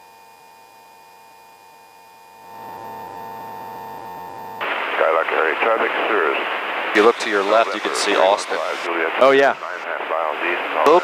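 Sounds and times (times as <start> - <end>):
steady electrical hum: 2.2 - 5.7
radio channel hiss: 2.4 - 11.0.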